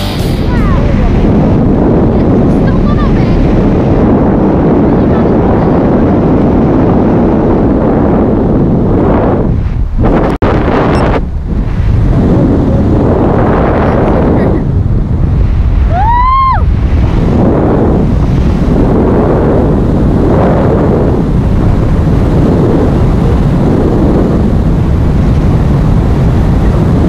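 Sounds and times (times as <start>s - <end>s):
wind rushing over microphone: 0.0s - 27.0s.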